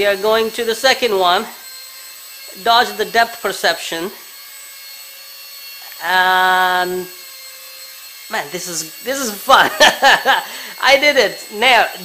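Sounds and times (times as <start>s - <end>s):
toy helicopter motor whine: 0.0s - 12.0s.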